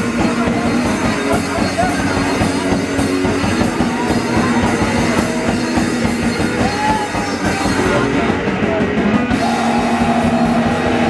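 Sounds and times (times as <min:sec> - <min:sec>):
bass guitar: 0:00.0 - 0:11.0
distorted electric guitar: 0:00.0 - 0:11.0
fast drumming: 0:00.0 - 0:11.0.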